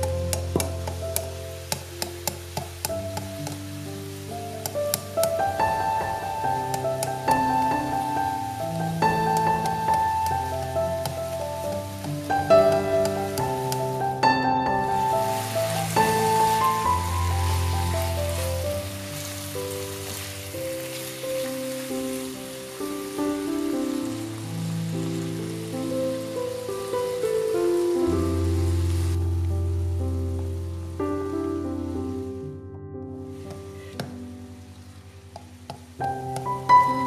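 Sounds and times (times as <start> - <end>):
vegetables sizzling in a pan: 0.0 - 32.4, 33.3 - 37.0
piano music: 0.0 - 37.0.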